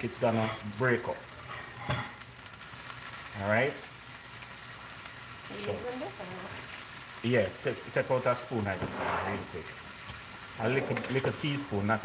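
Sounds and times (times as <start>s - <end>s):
food sizzling in a skillet: 0.0s - 12.0s
spatula stirring: 7.9s - 11.7s.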